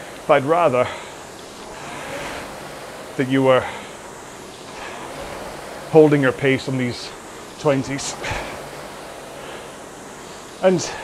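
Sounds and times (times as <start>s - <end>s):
rowing machine flywheel whooshing: 0.0s - 11.0s.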